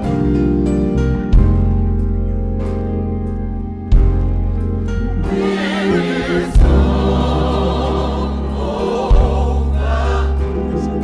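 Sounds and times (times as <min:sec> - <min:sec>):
deep bass notes: 0:00.0 - 0:11.0
instrumental accompaniment: 0:00.0 - 0:11.0
gospel choir singing: 0:05.0 - 0:11.0.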